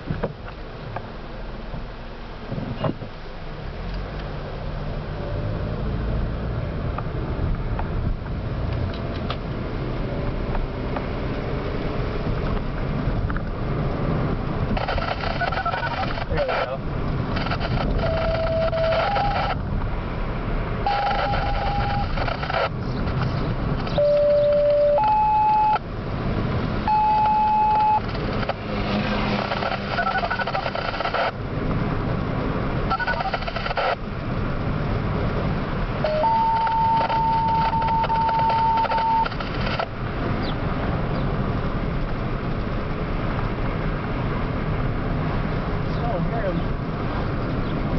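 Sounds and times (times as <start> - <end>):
car road noise: 0.0 - 47.9
radio beep tones: 14.8 - 16.8, 17.4 - 19.6, 20.8 - 23.3, 23.9 - 25.8, 26.9 - 28.6, 29.2 - 31.4, 32.9 - 34.0, 36.0 - 39.9
hissy radio transmission: 14.8 - 19.6, 20.9 - 25.8, 26.9 - 31.4, 32.9 - 34.0, 36.0 - 39.9.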